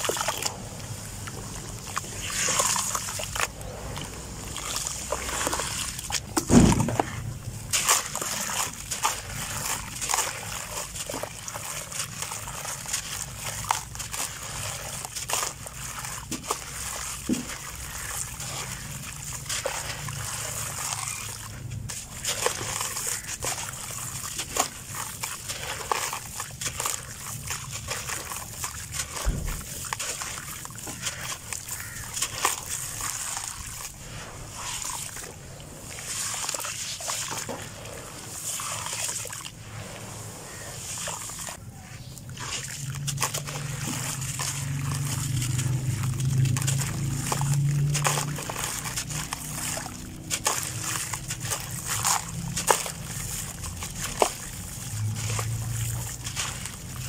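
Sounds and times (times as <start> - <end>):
sand trickling into water: 0.0 - 57.0.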